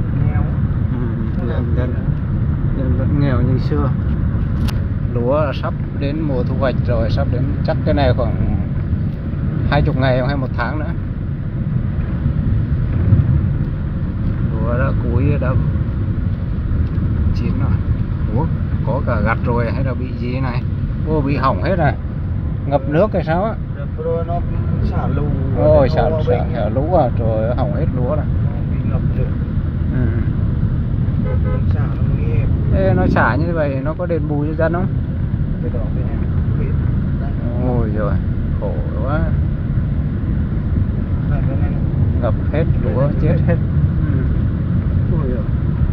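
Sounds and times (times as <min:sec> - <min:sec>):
car engine and tyre noise: 0:00.0 - 0:45.9
moving vehicle rumble: 0:00.0 - 0:45.9
wind: 0:00.0 - 0:45.9.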